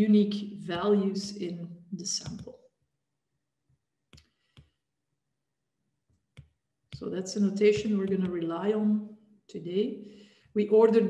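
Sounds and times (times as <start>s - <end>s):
stylus tapping on tablet screen: 2.0s - 2.6s, 3.7s - 4.8s, 6.0s - 8.8s.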